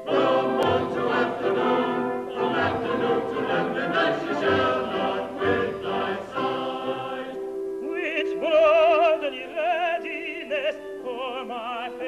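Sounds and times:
orchestra playing: 0.0 - 7.7
chorus singing: 0.0 - 12.0.

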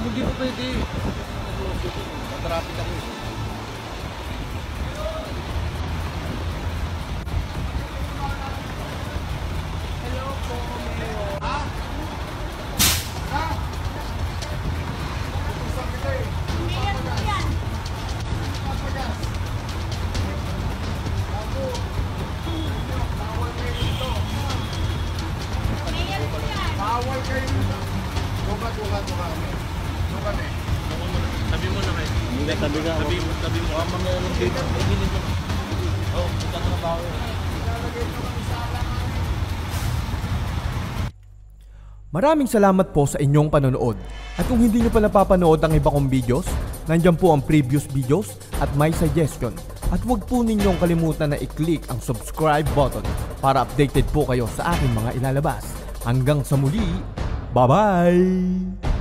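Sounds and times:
truck engine idling: 0.0 - 42.1, 44.4 - 57.3
sharp air hiss: 12.8 - 13.4, 39.6 - 40.4.

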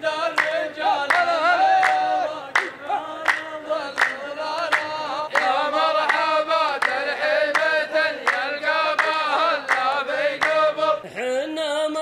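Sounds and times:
group handclap: 0.0 - 11.0
men chanting in unison: 0.0 - 12.0.

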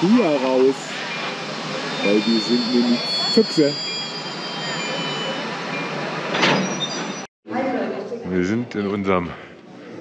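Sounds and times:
diesel train engine running: 0.0 - 6.4.

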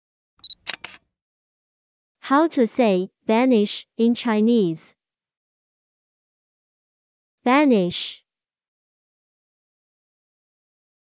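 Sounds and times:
quick clicks: 0.4 - 1.0.

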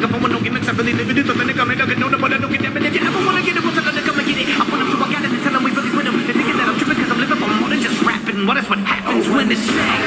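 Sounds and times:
rap music over loudspeakers: 0.0 - 10.0
voices over steady noise: 0.0 - 10.0.

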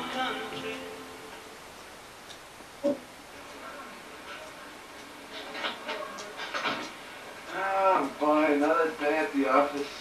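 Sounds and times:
music: 0.0 - 1.6
steady low hiss: 0.0 - 10.0.

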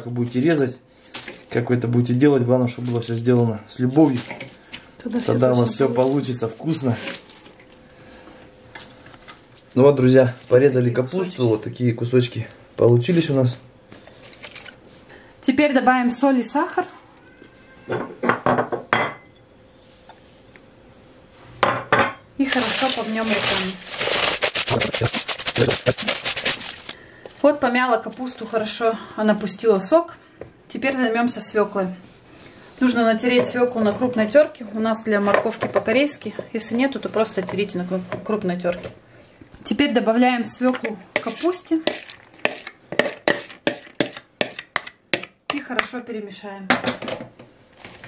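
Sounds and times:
utensil scraping plastic bowl: 22.5 - 27.0, 41.2 - 45.3.

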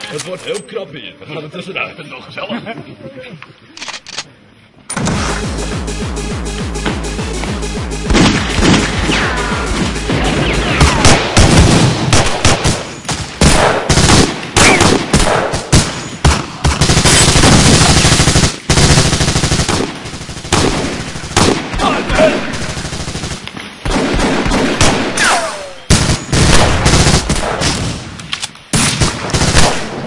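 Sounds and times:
automatic gunfire: 10.8 - 21.9, 28.8 - 30.0.

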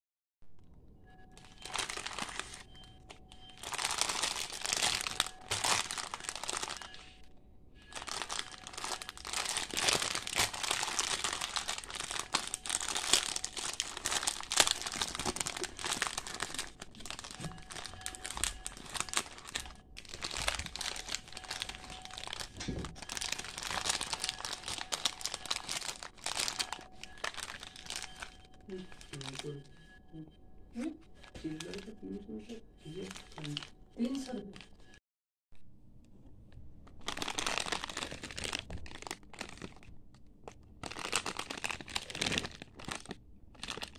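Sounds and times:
plastic packaging crinkling: 1.3 - 7.2, 7.8 - 29.9, 31.1 - 32.2, 32.8 - 35.0, 36.8 - 43.9.

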